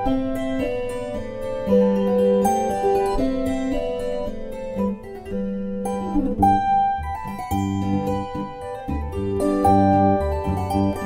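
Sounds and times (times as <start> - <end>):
plucked zither folk tune: 0.0 - 11.0.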